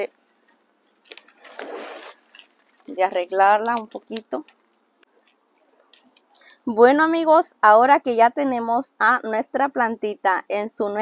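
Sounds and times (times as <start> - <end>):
rustle of leaves and soil: 1.0 - 4.1.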